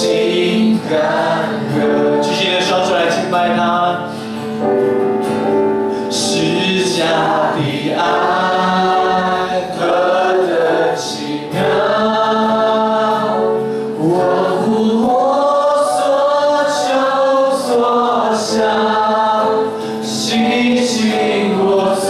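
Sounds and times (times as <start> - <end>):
man singing into a microphone: 0.0 - 4.2, 6.0 - 22.0
congregation singing a worship song: 0.0 - 22.0.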